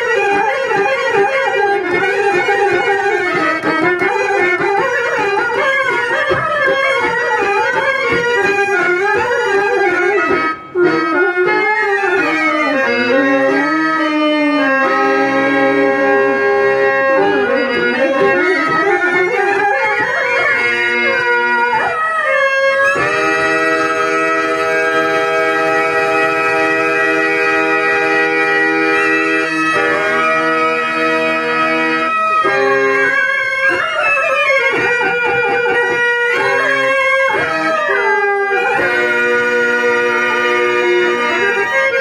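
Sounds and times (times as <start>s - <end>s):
reed-organ accompaniment: 0.0s - 42.0s.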